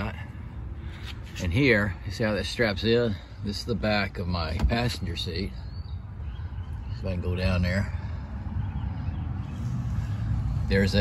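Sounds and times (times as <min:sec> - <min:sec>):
low rumble inside truck cab: 0:00.0 - 0:11.0.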